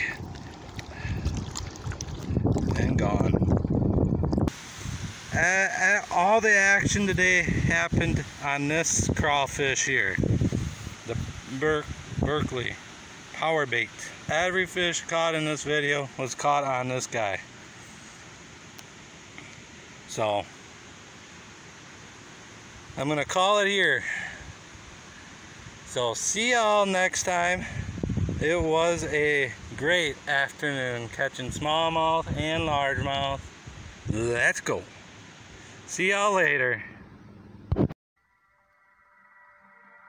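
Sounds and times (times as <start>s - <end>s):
water sloshing and splashing: 0.0s - 4.4s
wind buffeting microphone: 0.0s - 5.3s, 6.8s - 12.8s, 27.7s - 29.8s
faint background hiss: 4.4s - 37.8s.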